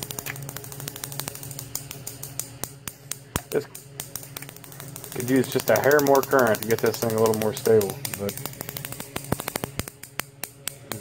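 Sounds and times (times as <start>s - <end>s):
induction coil interrupter chattering: 0.0s - 11.0s
sparks snapping: 0.0s - 11.0s
steady low hum: 0.0s - 11.0s.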